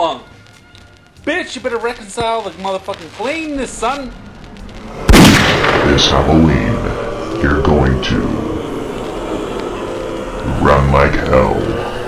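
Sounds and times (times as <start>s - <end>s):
steady droning background: 0.2s - 12.0s.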